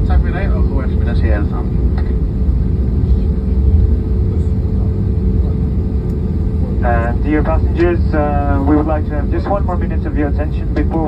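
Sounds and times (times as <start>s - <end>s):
jet engines idling in cabin: 0.0s - 11.0s.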